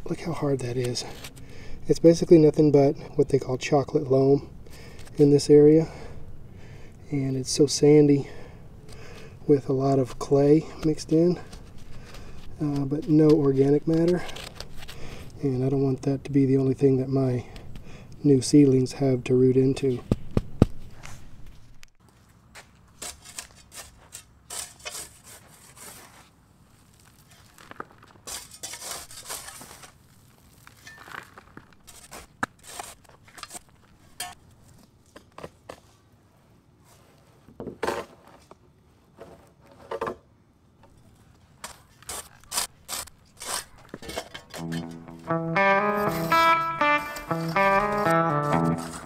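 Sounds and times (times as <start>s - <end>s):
shovel scraping into soil: 23.0s - 26.3s, 28.2s - 30.0s, 31.8s - 33.6s.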